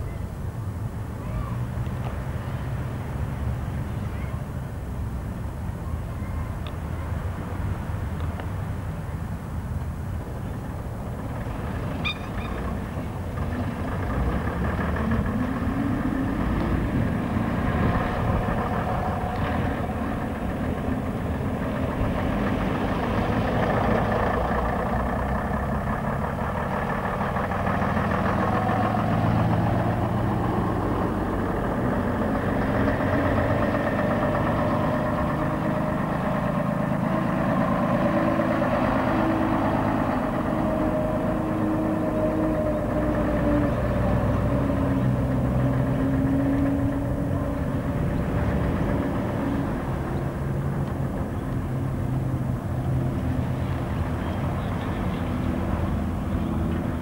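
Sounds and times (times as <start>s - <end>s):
bus engines idling and pulling away: 0.0s - 57.0s.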